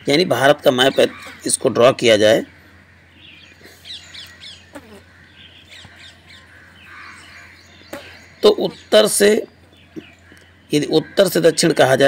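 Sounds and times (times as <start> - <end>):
faint bird chirps: 2.4 - 11.8.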